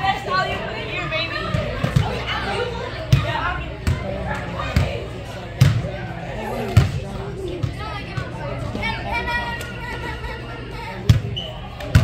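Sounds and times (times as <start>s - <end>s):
crowd chatter in echoing arena: 0.0s - 12.0s.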